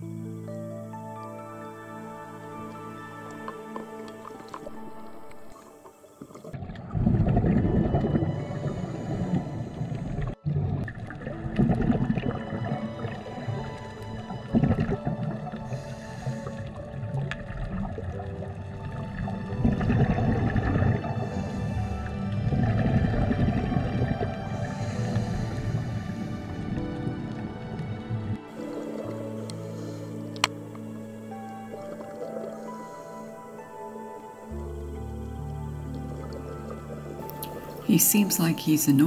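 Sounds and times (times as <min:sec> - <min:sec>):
slow sustained background music: 0:00.0 - 0:39.0.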